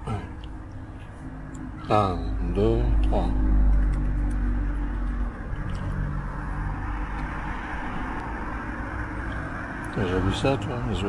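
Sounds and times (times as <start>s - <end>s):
low hum: 0.0s - 10.0s
vehicle rumble and hiss: 0.0s - 11.0s.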